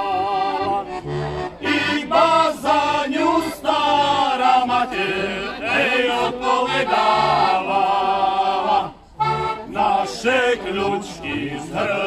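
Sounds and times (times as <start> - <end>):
men singing in harmony: 0.0 - 1.0, 1.6 - 9.0, 9.7 - 12.0
button accordion: 0.0 - 12.0.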